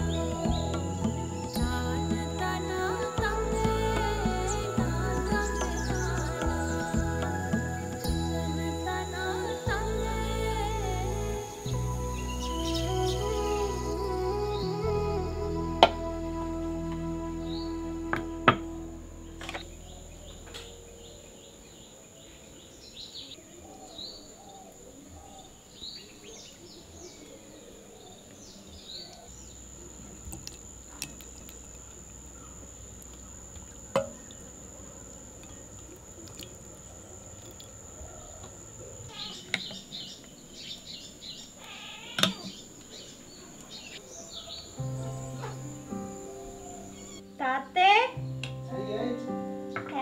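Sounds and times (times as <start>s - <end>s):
birds chirping: 0.0s - 15.5s, 19.2s - 50.0s
steady high-pitched whine: 0.0s - 41.6s.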